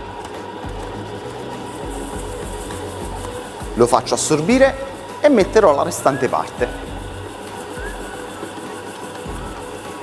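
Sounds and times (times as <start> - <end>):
low beat of dough turning: 0.0 - 10.0
stand mixer kneading dough: 0.0 - 10.0.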